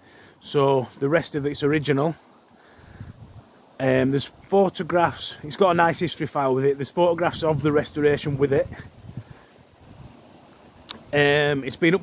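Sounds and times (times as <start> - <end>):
low wind rumble on microphone: 2.8 - 3.6, 7.2 - 11.2.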